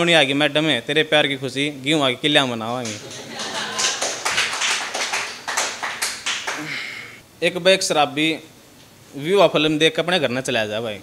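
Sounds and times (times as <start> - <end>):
people clapping: 2.8 - 6.8.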